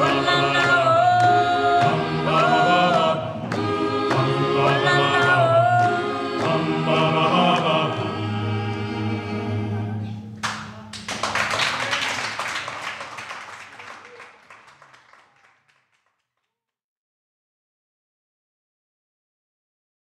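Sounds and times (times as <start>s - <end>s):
a cappella choir singing: 0.0s - 10.3s
applause: 10.4s - 16.6s.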